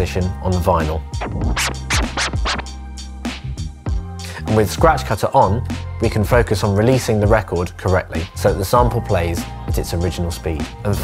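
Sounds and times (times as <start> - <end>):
low bass tone: 1.1 - 4.3
turntable scratching: 1.2 - 3.4.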